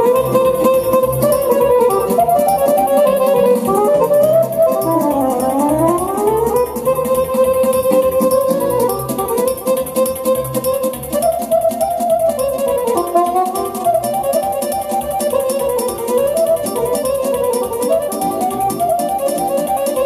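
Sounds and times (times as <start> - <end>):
folk dance band playing: 0.0 - 20.0.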